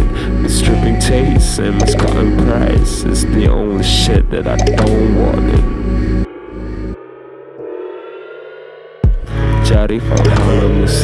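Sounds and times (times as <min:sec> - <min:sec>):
electronic hip-hop beat: 0:00.0 - 0:07.0, 0:09.0 - 0:11.0
rising layered synth tone: 0:04.5 - 0:09.2.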